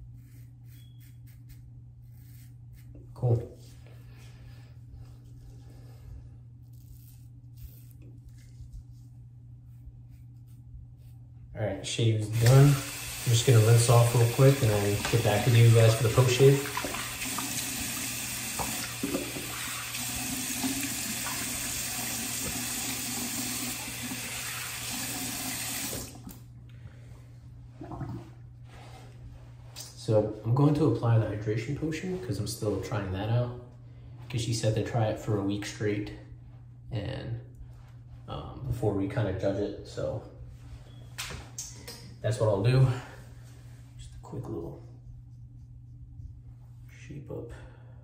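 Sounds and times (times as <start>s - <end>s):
razor scraping stubble: 0.0s - 3.2s, 6.6s - 8.8s, 9.7s - 11.2s
steady low hum: 0.0s - 17.0s, 26.2s - 48.0s
sink tap running: 12.2s - 26.4s.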